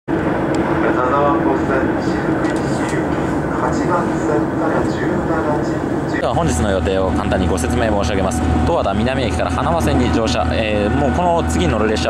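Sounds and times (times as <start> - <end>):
train running inside carriage: 0.1 - 12.0.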